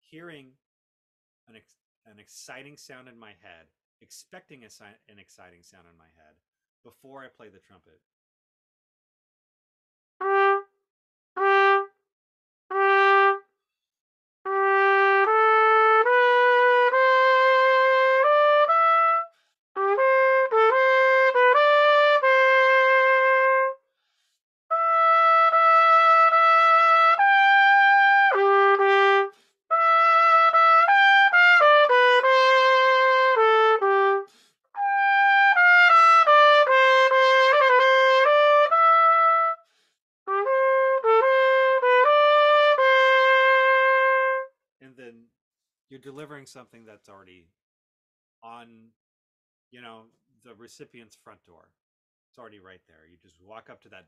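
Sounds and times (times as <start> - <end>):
solo trumpet playing: 10.2 - 10.8, 11.4 - 12.0, 12.7 - 13.5, 14.5 - 23.8, 24.7 - 39.6, 40.3 - 44.5.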